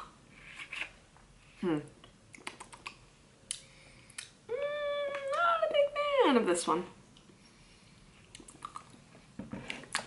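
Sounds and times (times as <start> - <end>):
mouth clicks and smacks: 2.0 - 4.4, 8.3 - 9.0.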